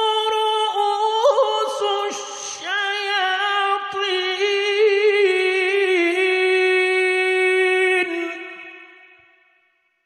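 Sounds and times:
person reciting melodically: 0.0 - 9.0.

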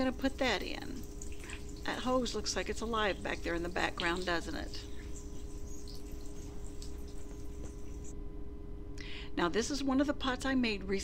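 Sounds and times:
water trickling from a hose: 0.0 - 8.1
steady hum: 0.0 - 11.0.

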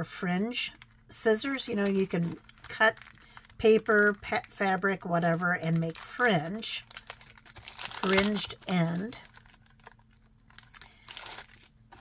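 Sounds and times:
plastic packaging crinkling: 0.6 - 12.0.

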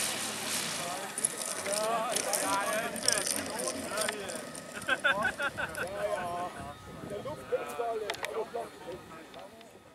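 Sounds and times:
people talking and exclaiming: 0.7 - 9.9.

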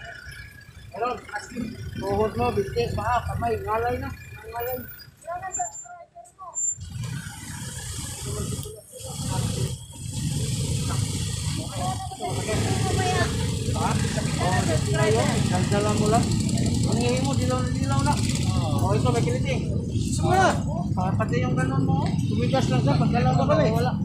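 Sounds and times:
people talking indistinctly: 0.0 - 6.8, 7.6 - 24.0
road traffic engine rumble: 0.0 - 24.0.

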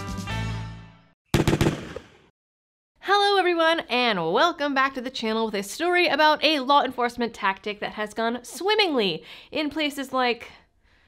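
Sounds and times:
rapid automatic gunfire: 1.3 - 2.3.

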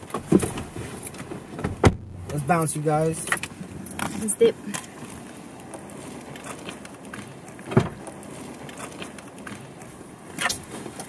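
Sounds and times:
car cabin noise: 0.0 - 11.0.

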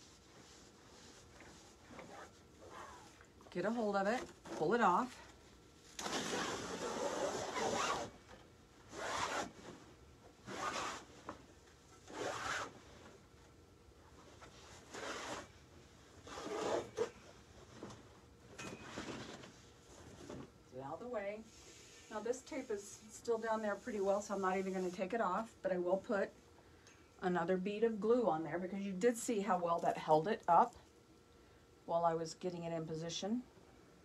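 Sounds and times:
canvas pulled off roller rasping: 0.0 - 5.2, 5.8 - 13.2, 14.2 - 20.5.

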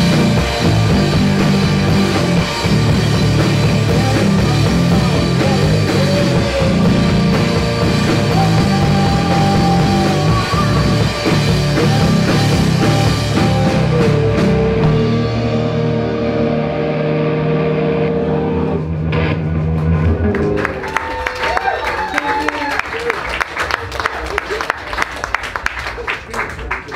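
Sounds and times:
drums and cymbals: 0.0 - 16.1
distorted electric guitars: 0.0 - 21.2
person singing: 3.6 - 15.2.

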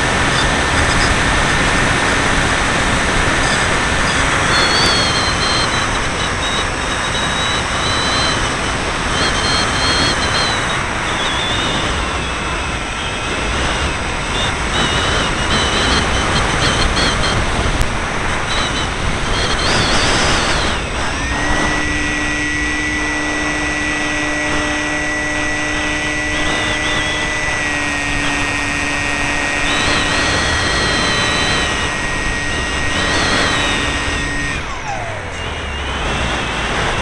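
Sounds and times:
electric motor and propeller whine: 0.0 - 37.0
wind rushing over camera: 0.0 - 37.0.

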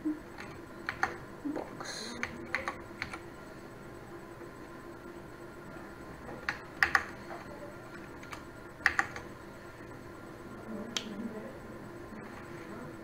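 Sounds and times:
computer keyboard keystrokes: 0.4 - 1.2, 2.2 - 3.2, 6.4 - 7.2, 8.2 - 9.3.

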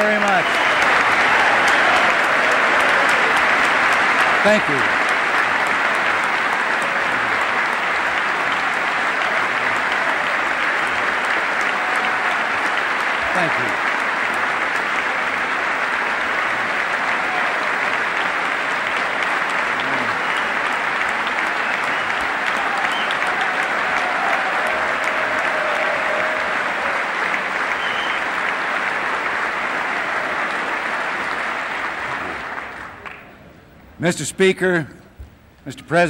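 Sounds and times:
large audience applauding: 0.0 - 33.4.

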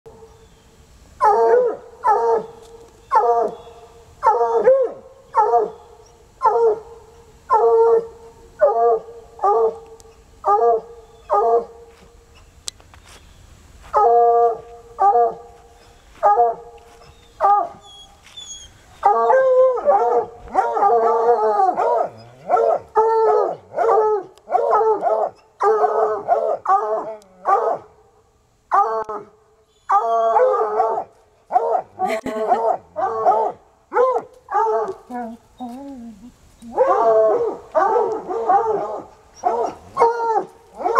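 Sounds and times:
hounds baying and barking: 1.2 - 3.6, 4.2 - 12.1, 13.8 - 27.9, 29.9 - 35.9, 36.6 - 40.9.

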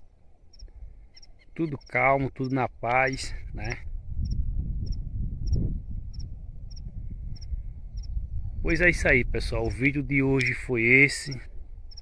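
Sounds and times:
cricket chirping: 0.5 - 2.6, 4.2 - 8.1, 11.2 - 12.0
low rumble on microphone: 3.2 - 10.8.

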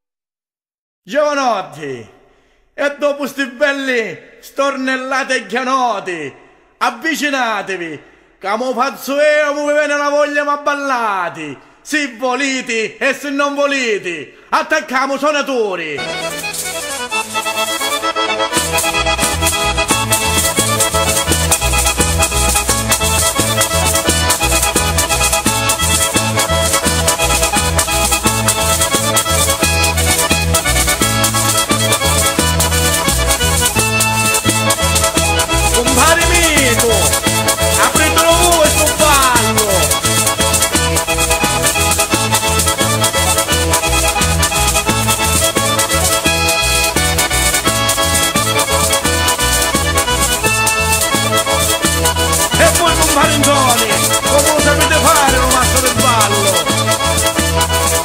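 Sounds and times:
accordion folk dance music: 13.1 - 58.0.

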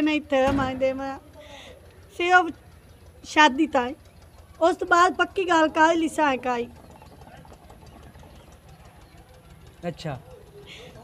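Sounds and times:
small motor running: 0.0 - 11.0.

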